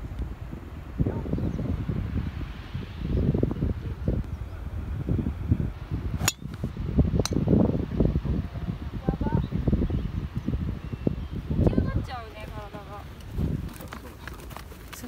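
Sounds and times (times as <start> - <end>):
wind buffeting microphone: 0.0 - 15.0
golf driver striking ball: 6.2 - 6.6.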